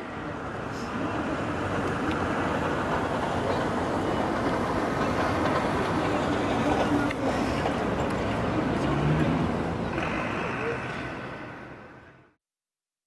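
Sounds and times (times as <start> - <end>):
city square outdoor din: 0.0 - 12.4.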